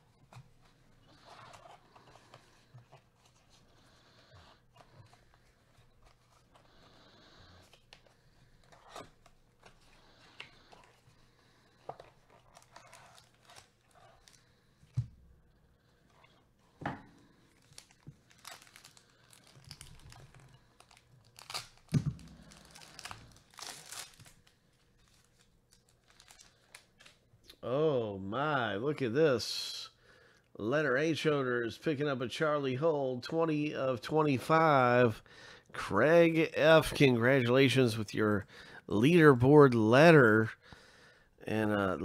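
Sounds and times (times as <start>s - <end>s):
wrapper crinkling and tearing: 12.0s - 14.4s, 17.4s - 27.2s.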